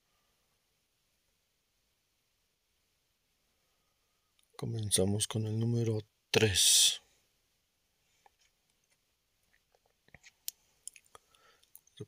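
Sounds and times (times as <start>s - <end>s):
faint sharp clicks and smacks: 4.3s - 4.6s, 8.1s - 12.0s.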